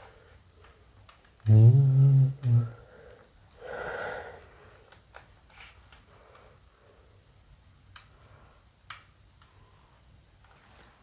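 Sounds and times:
soft breathy noise: 0:00.0 - 0:01.0, 0:01.8 - 0:08.9
low voice holding a vowel: 0:01.4 - 0:02.8.

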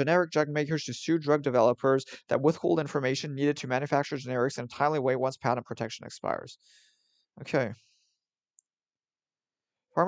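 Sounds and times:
synthesized voice reading: 0:00.0 - 0:06.6, 0:07.4 - 0:07.8.

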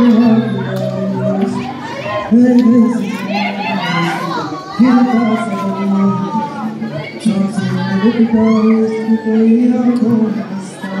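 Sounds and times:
amplified voice through microphone: 0:00.0 - 0:11.0
crowd chatter and shouts: 0:00.0 - 0:11.0.

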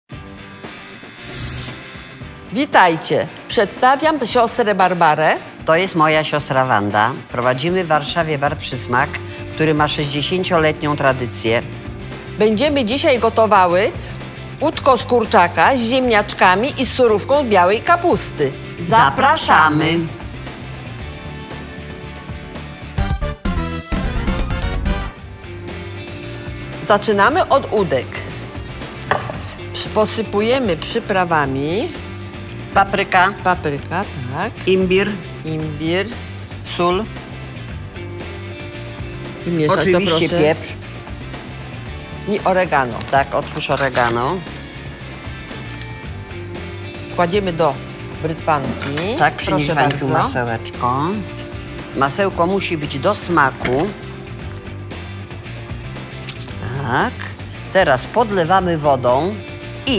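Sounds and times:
neon sign buzzing: 0:00.1 - 0:02.4
glass bowl and plate knocking: 0:29.1 - 0:29.4.

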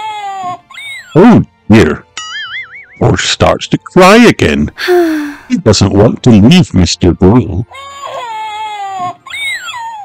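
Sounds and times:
person imitating toddler crying: 0:04.8 - 0:05.4.

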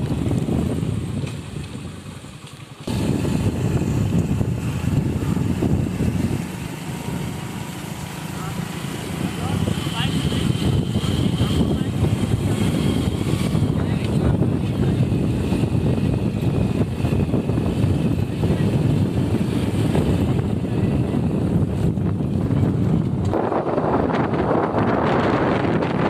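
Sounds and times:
motorcycle engine running: 0:00.0 - 0:26.0
wind rushing over microphone: 0:00.0 - 0:26.0.

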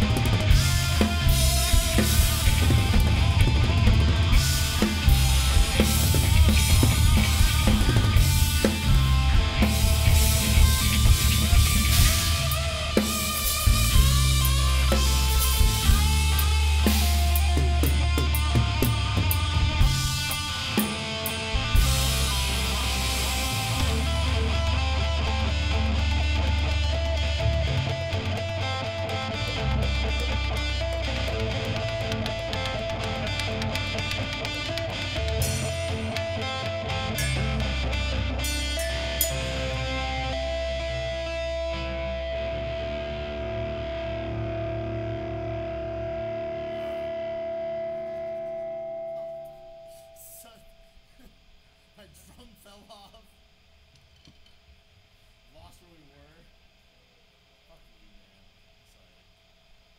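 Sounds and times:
drum kit: 0:00.0 - 0:44.4
distorted electric guitar: 0:00.0 - 0:51.6.

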